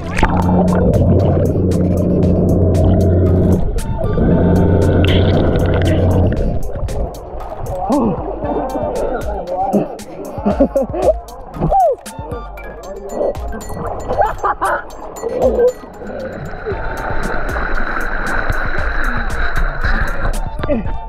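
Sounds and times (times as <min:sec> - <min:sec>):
water gurgling: 0:00.0 - 0:20.9
background music with steady beat: 0:00.0 - 0:21.0.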